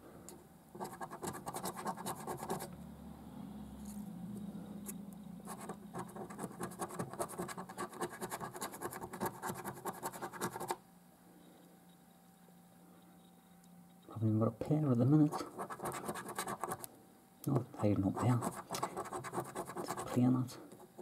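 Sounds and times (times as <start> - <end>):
scratch card being scratched: 0.8 - 2.7, 5.4 - 10.8, 15.3 - 16.9, 18.1 - 20.2.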